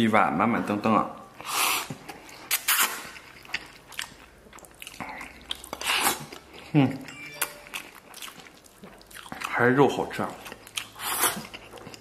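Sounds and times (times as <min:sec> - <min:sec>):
noisy eating mouth sounds: 0:01.4 - 0:07.1, 0:07.7 - 0:12.0.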